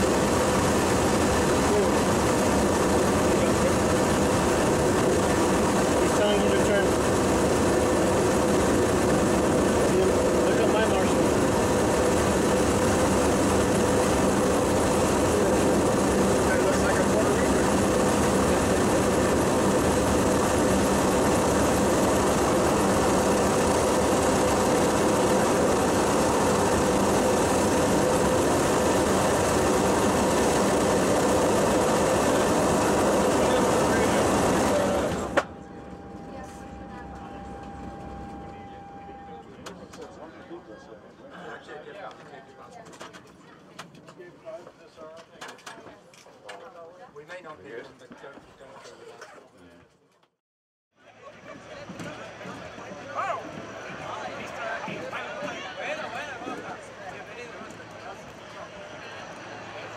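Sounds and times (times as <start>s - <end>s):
piston aircraft engines running: 0.0s - 40.6s, 51.0s - 59.9s.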